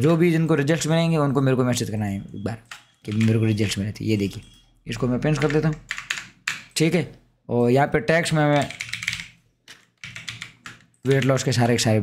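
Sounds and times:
computer keyboard typing: 0:02.3 - 0:06.9, 0:08.4 - 0:11.8.

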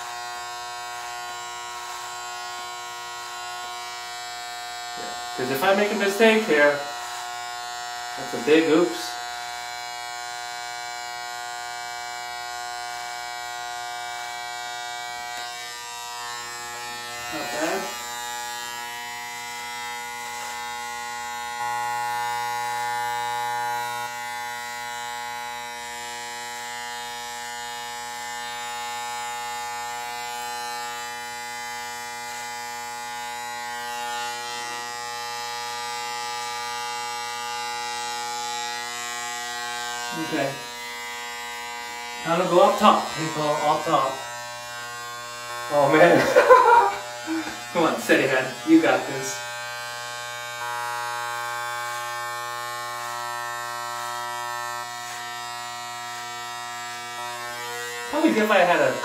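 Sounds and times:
electric hair clippers buzzing: 0:00.0 - 0:59.0.

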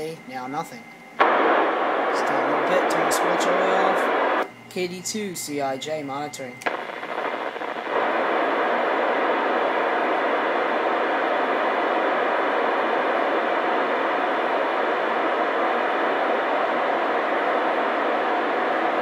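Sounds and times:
radio static hiss: 0:00.0 - 0:19.0.

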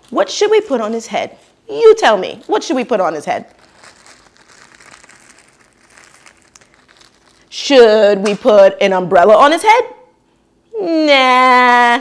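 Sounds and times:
bag crinkling: 0:02.0 - 0:07.5.

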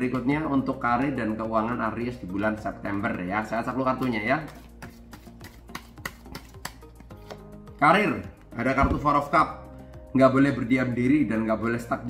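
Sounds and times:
quiet background music: 0:00.0 - 0:12.0
cards clicking and flicking: 0:04.0 - 0:07.5.

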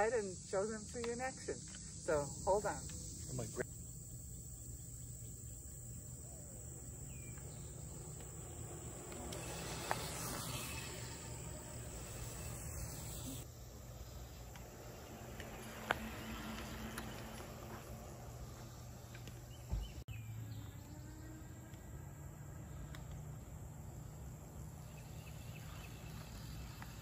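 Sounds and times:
crickets trilling: 0:00.0 - 0:27.0
e-bike rolling past: 0:06.2 - 0:27.0.

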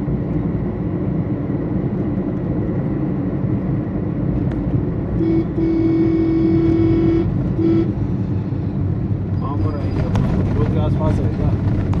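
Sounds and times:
car engine and road noise: 0:00.0 - 0:12.0
car horn beeping: 0:05.2 - 0:08.1.

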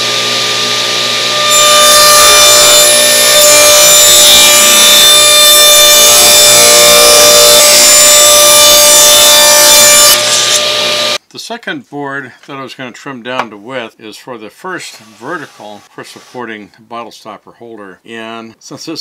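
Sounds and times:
table saw cutting wood: 0:00.0 - 0:11.2, 0:14.9 - 0:16.5.

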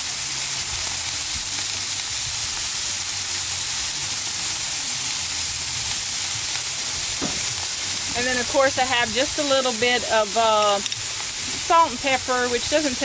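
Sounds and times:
burger patties sizzling on griddle: 0:00.0 - 0:13.0.

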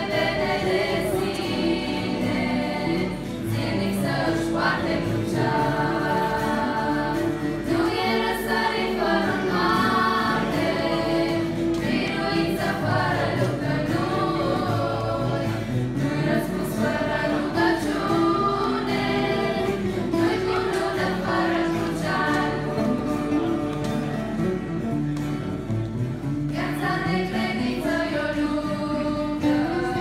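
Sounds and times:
girls singing in harmony: 0:00.0 - 0:23.8, 0:26.5 - 0:30.0.

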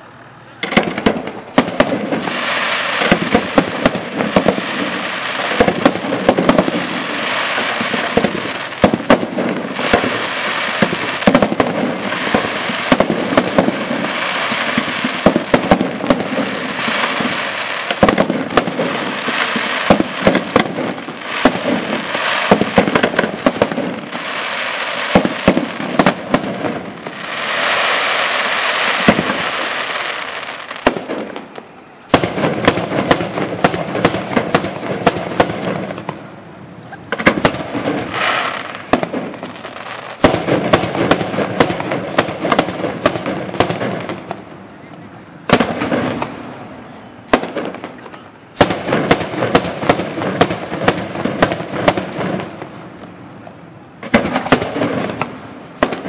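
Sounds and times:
firework crackle: 0:00.0 - 0:56.0
firework shells bursting: 0:00.6 - 0:36.3, 0:37.0 - 0:44.4.

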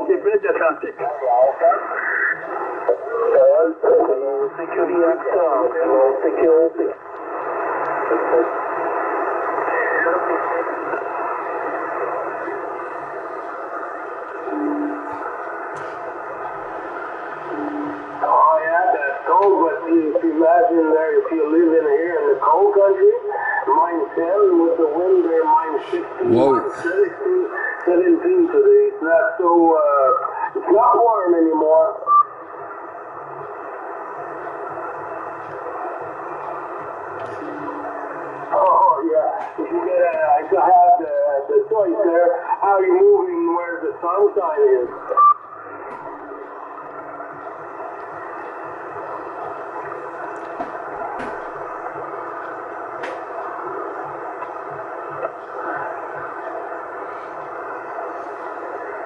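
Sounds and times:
radio static hissing: 0:00.0 - 0:59.0
distant voice over radio: 0:08.0 - 0:12.8, 0:17.5 - 0:32.2, 0:37.2 - 0:45.2
brief radio beep: 0:17.5 - 0:18.2.

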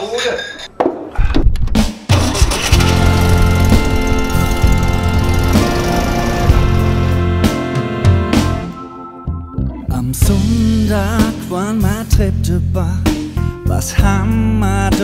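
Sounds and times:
music: 0:01.6 - 0:15.0
engine starting and running: 0:02.1 - 0:07.8.

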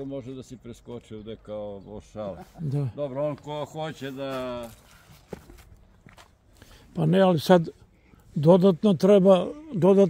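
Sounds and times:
footsteps on gravel: 0:03.3 - 0:06.8.

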